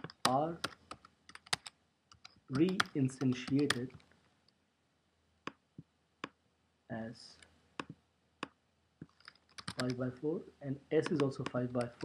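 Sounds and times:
person speaking: 0.0 - 1.0, 2.4 - 4.2, 6.9 - 7.6, 9.6 - 12.0
keyboard key clicks: 0.0 - 4.0, 9.5 - 10.0.

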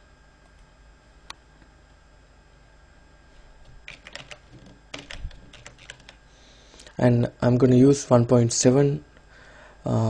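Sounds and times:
typing on computer keyboard: 3.9 - 6.2.

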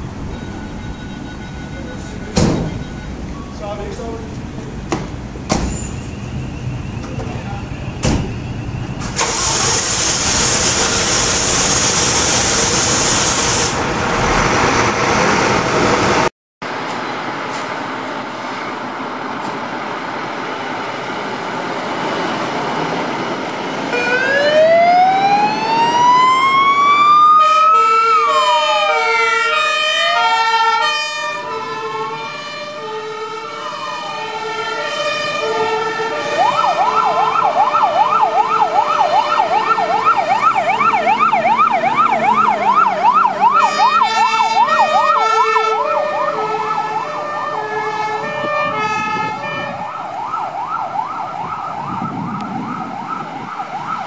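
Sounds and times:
sirens wailing: 0.0 - 4.8, 18.0 - 54.0
diesel engine noise: 0.0 - 54.0
air hiss: 9.0 - 13.8
siren fast yelp: 23.9 - 54.0.

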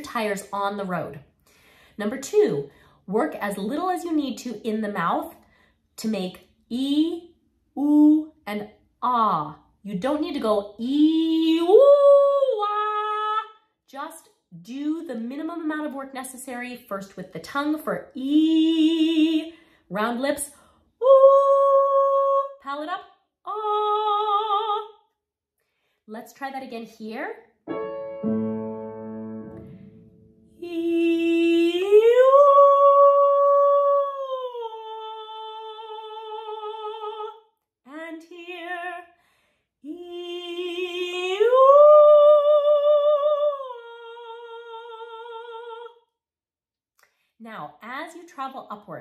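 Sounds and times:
woman singing vocal exercise: 9.9 - 13.5, 17.8 - 24.9, 30.6 - 39.1, 39.8 - 46.0.

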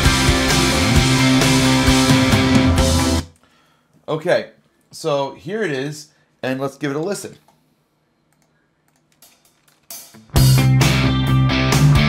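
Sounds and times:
computer keyboard clicks: 8.3 - 10.0.

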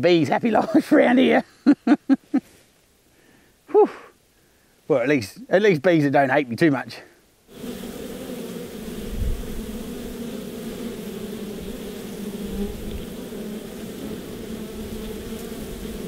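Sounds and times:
honey bees buzzing: 7.4 - 16.0.

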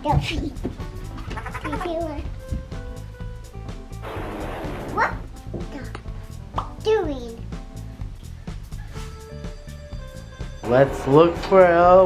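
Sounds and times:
background music: 0.0 - 12.0
cartoon explosion: 4.0 - 5.2.

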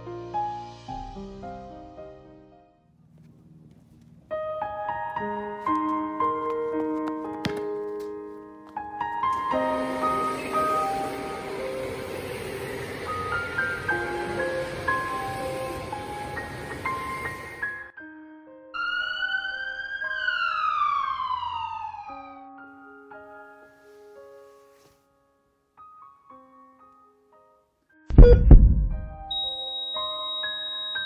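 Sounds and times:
soft piano music: 0.0 - 20.4, 21.1 - 31.0.

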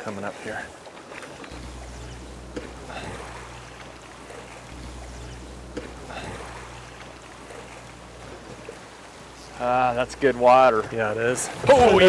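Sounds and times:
river water rushing and lapping: 0.0 - 12.0
steady low rumble: 1.4 - 12.0.

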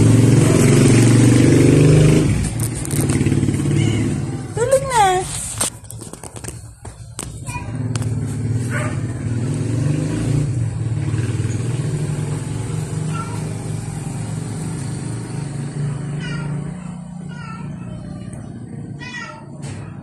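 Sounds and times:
engine running: 0.0 - 20.0.

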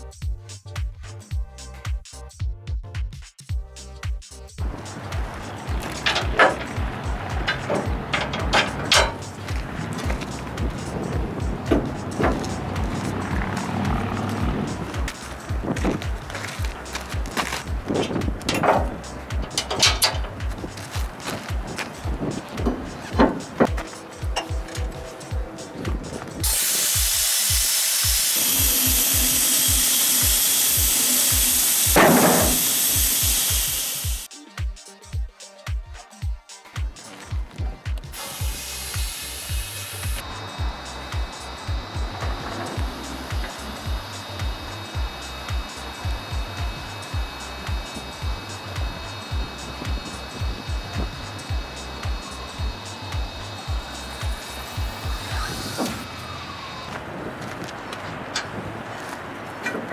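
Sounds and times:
background music with beat: 0.0 - 56.1
compressed air hiss: 4.6 - 24.2, 25.0 - 34.3, 38.1 - 56.8.

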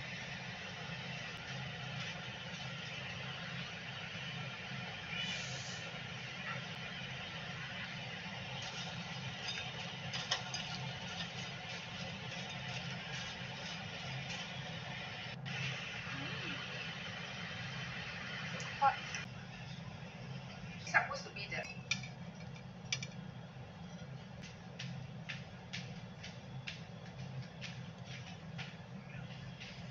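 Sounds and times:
steady low hum: 0.0 - 29.9.

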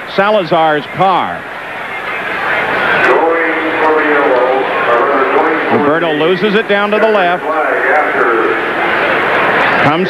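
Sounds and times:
commentator speaking: 0.1 - 8.7, 9.8 - 10.0.

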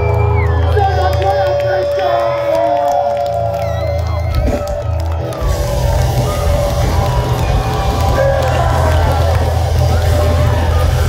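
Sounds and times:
live punk band playing loudly: 3.8 - 11.0.

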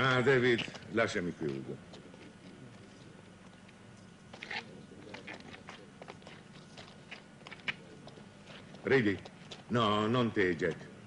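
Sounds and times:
low steady hum: 0.0 - 11.0
footsteps of people walking: 0.2 - 11.0.

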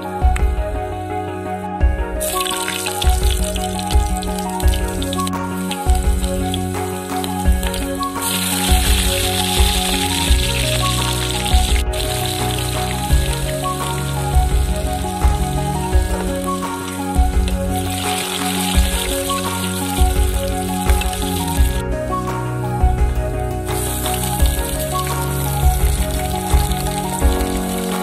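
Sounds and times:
background music with steady beat: 0.0 - 28.0
hot oil sizzling: 2.2 - 21.8, 23.7 - 28.0.

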